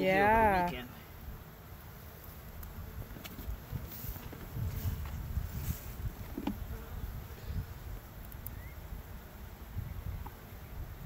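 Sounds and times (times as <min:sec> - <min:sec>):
honeybees buzzing: 0:00.0 - 0:11.0
wind rumbling on microphone: 0:02.8 - 0:11.0.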